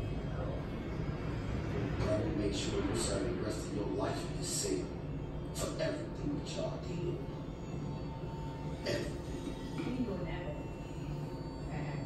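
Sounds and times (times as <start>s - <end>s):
faint television voices: 0.0s - 12.0s
television low rumble: 0.0s - 12.0s.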